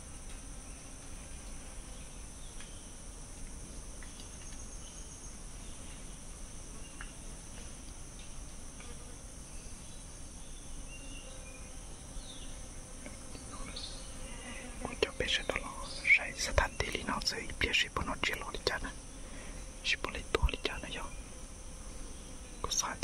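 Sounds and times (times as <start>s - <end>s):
high-pitched insect drone: 9.2s - 23.0s
person whispering: 13.3s - 13.8s, 14.6s - 19.0s, 19.8s - 21.2s, 22.6s - 23.0s.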